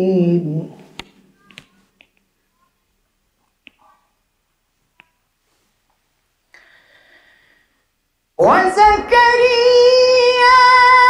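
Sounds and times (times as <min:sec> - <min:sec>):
faint short clicks: 0:01.0 - 0:02.2
sung recitation: 0:08.4 - 0:11.0.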